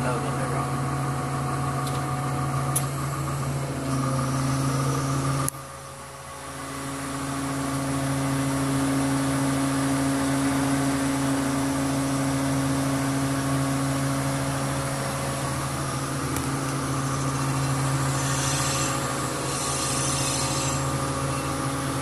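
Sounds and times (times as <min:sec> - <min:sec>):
crane engine running: 0:00.0 - 0:22.0.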